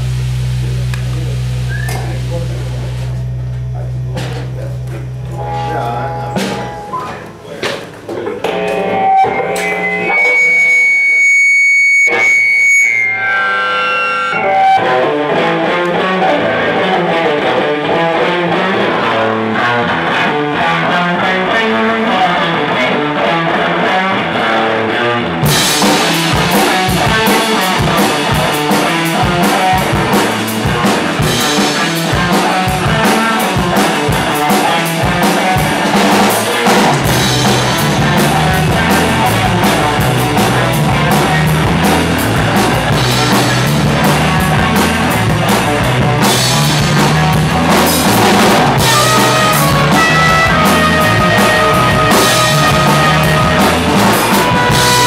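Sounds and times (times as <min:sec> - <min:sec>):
drum kit: 0:00.0 - 0:13.1, 0:14.3 - 0:55.0
electric guitar playing: 0:00.0 - 0:55.0
live band playing: 0:00.0 - 0:55.0.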